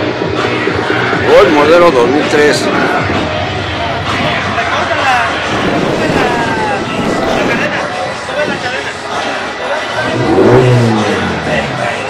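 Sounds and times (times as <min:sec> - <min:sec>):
crowd chatter: 0:00.0 - 0:12.0
car engine revving: 0:02.9 - 0:12.0.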